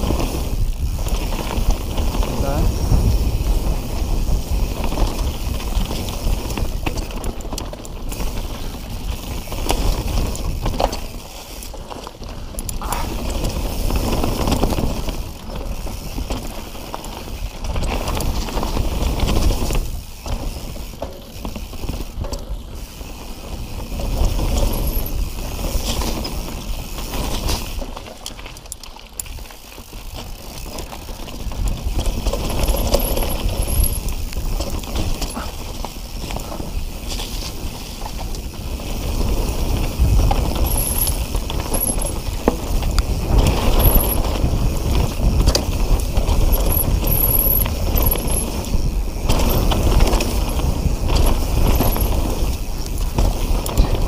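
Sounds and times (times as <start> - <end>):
bike rattling and clicking: 0.0 - 54.0.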